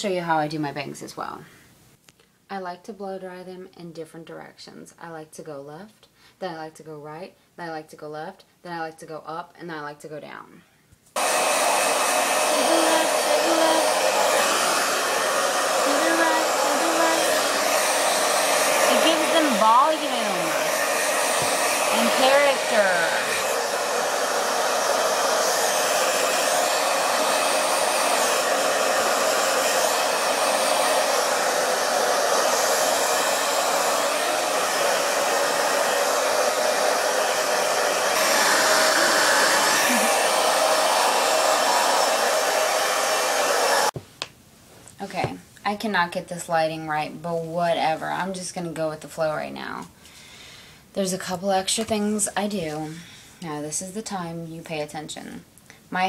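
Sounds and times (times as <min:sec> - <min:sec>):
hair dryer blowing: 0:11.2 - 0:44.0, 0:51.2 - 0:53.6.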